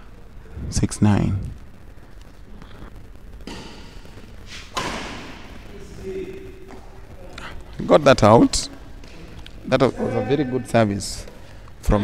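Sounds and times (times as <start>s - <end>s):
racket striking shuttlecock: 3.4s - 4.1s, 4.7s - 5.5s.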